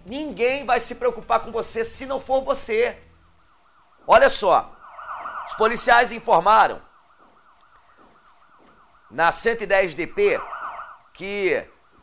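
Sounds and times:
faint warbling siren: 0:00.6 - 0:12.0.

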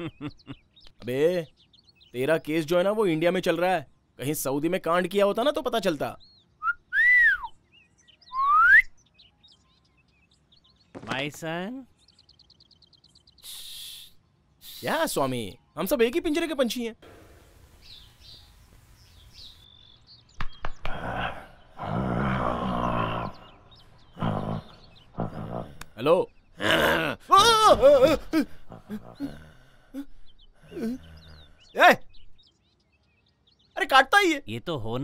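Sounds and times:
sharp knocks: 0:20.4 - 0:21.0
man growling: 0:20.9 - 0:26.0, 0:26.6 - 0:31.8.

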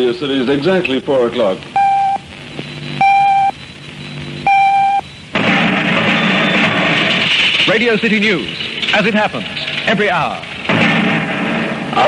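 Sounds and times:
high electronic beep: 0:01.8 - 0:05.4.

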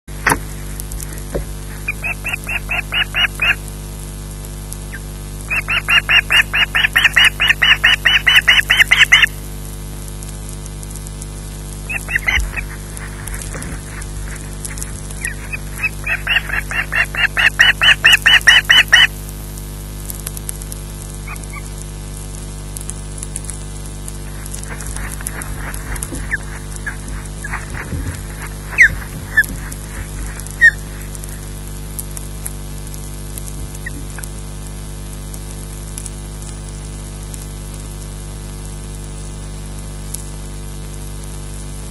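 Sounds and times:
steady electrical hum: 0:00.1 - 0:41.9
osprey high-pitched whistling calls: 0:01.1 - 0:03.6, 0:04.9 - 0:09.3, 0:11.9 - 0:19.1, 0:21.2 - 0:21.7, 0:24.3 - 0:31.6.

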